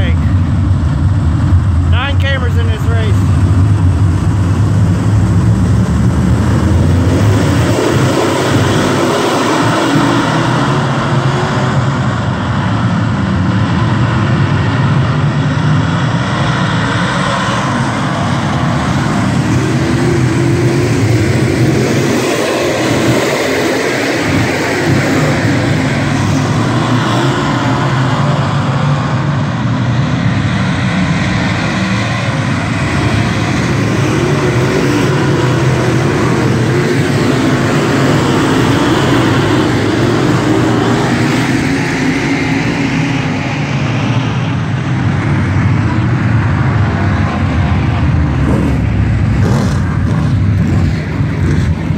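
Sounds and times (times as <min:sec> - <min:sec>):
race car engines roaring: 0:00.0 - 0:51.9.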